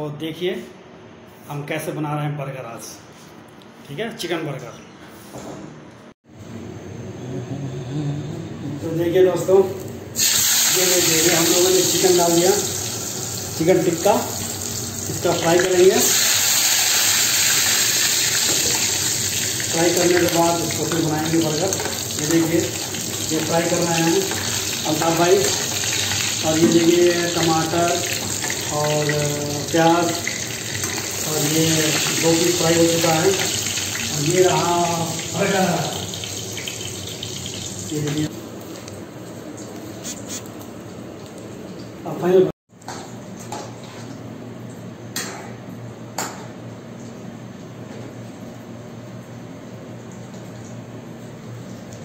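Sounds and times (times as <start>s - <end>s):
steady background hiss: 8.4s - 36.4s
chicken frying in hot oil: 10.2s - 38.3s.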